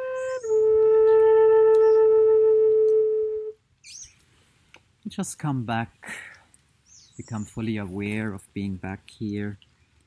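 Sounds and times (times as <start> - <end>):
wooden flute playing: 0.0 - 3.6.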